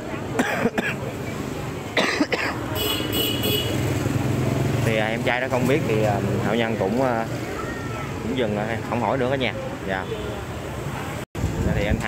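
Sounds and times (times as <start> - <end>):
person coughing: 0.4 - 1.0, 2.0 - 2.6.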